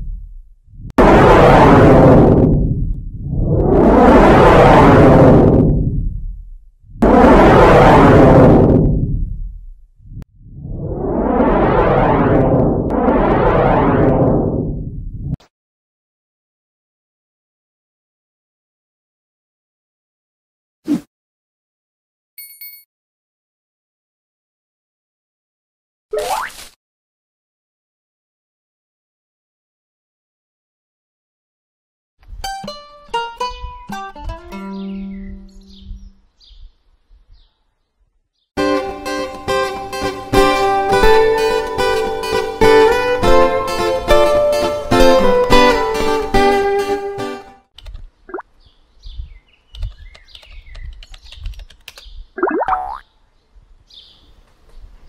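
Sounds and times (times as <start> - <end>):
cartoon rising swoop: 0.8 - 6.2, 6.9 - 9.4, 10.1 - 15.4
keyboard typing clicks: 49.7 - 52.1.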